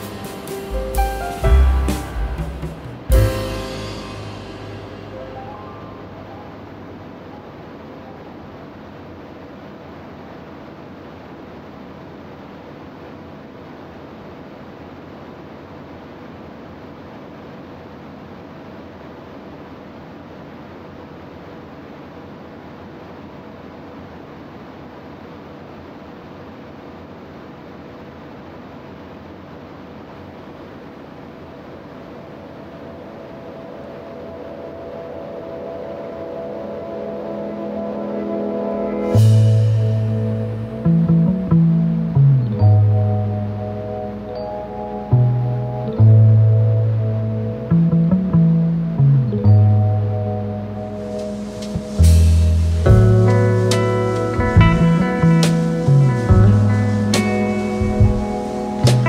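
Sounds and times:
light aircraft engine drone: 0.0 - 59.0.

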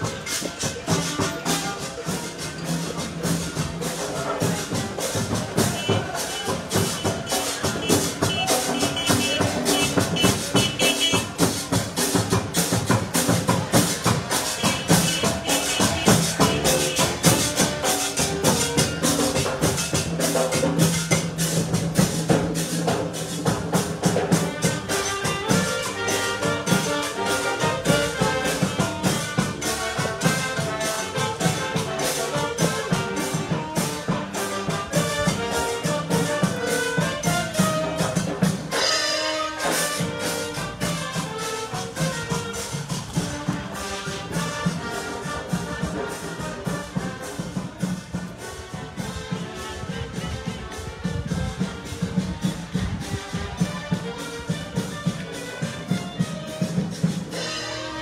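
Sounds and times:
drums and percussion: 0.0 - 58.0
trumpets and brass playing: 0.0 - 58.0.

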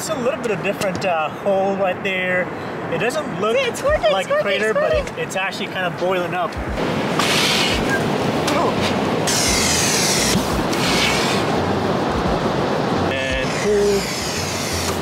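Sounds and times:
surf: 0.0 - 15.0
wind on microphone: 6.6 - 15.0.

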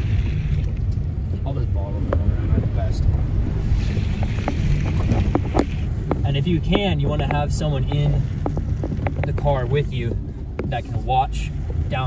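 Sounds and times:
car rolling rumble: 0.0 - 12.0
wind buffeting microphone: 0.0 - 12.0.

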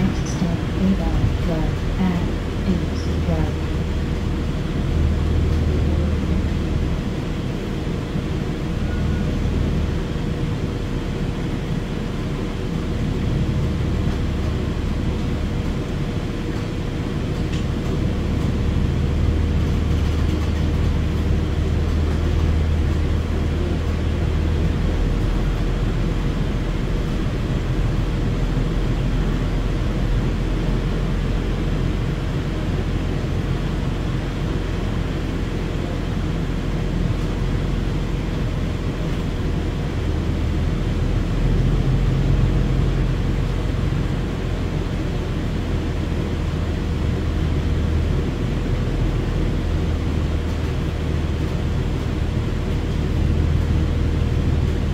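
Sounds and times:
bus engine low drone: 0.0 - 54.9
constant hum: 0.0 - 54.9.

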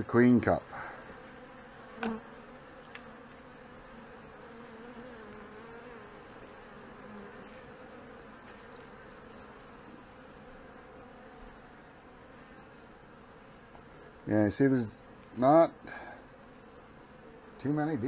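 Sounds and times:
bees buzzing: 0.0 - 18.0.

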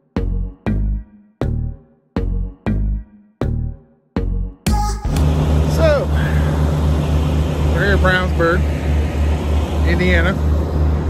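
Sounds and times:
diesel truck engine idling: 5.2 - 11.0.

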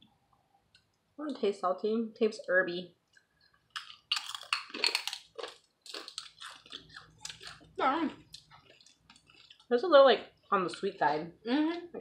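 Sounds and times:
crunching chips: 3.2 - 9.7.

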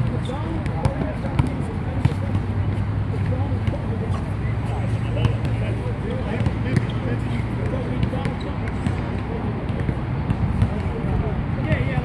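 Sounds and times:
basketball bouncing on hard court: 0.0 - 4.3, 5.2 - 11.0.

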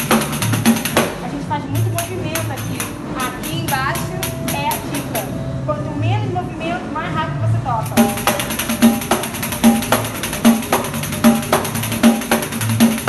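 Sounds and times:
pandeiro playing samba rhythm: 0.0 - 13.0.

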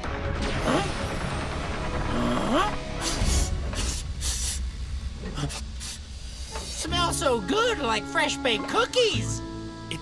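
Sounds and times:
steady low rumble: 2.8 - 7.5
cartoon character sniffing: 3.0 - 4.7.

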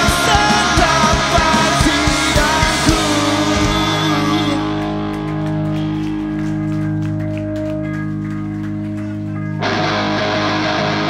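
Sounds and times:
electric guitar and bass ringing: 0.0 - 11.0.

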